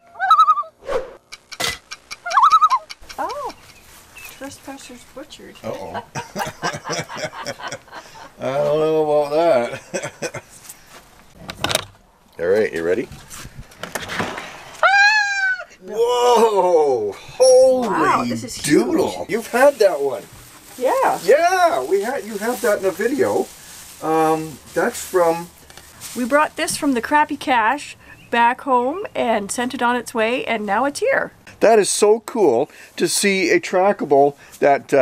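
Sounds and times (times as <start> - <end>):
quick whooshes: 0.8 - 1.2
rustling scrape: 13.1 - 14.8, 19.3 - 26.7.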